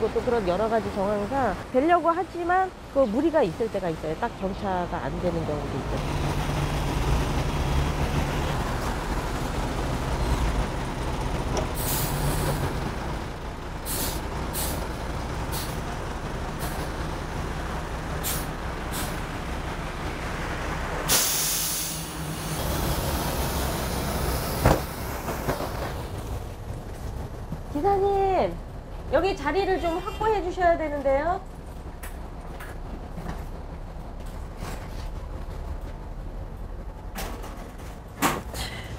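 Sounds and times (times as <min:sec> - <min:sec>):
bus engine idling: 0:00.0 - 0:38.9
pneumatic air hiss: 0:13.9 - 0:14.8, 0:21.1 - 0:22.1.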